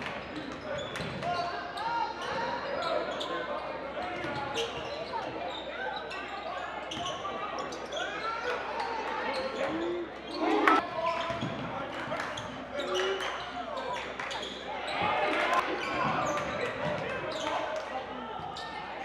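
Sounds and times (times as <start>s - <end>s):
sneakers squeaking: 0.2s - 8.5s, 9.3s - 11.7s, 12.4s - 17.7s
people calling out: 9.5s - 10.8s.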